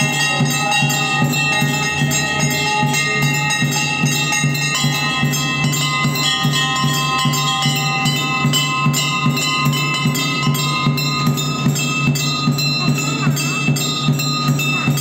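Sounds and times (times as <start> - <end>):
steady rhythmic beat: 0.0 - 15.0
temple bells ringing: 0.0 - 15.0.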